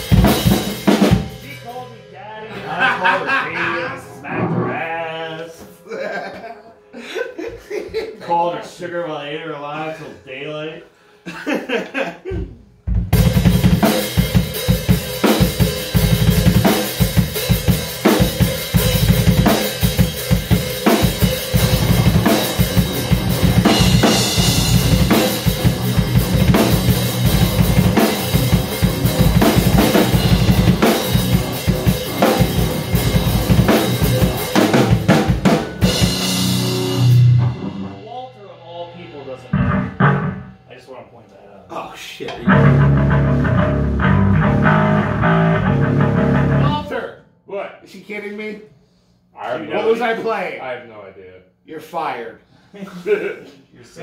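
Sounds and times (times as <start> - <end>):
live rock band playing: 0.0 - 5.8, 12.9 - 40.7, 42.4 - 46.9
drum kit: 0.0 - 6.0, 12.2 - 41.0, 42.2 - 47.0
single guitar and bass notes: 3.6 - 5.8, 35.8 - 38.0, 39.5 - 40.7, 42.3 - 46.8.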